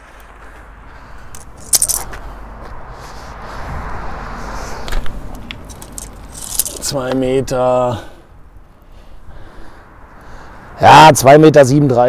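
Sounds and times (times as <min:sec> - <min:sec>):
rush of noise: 0:00.0 - 0:12.0.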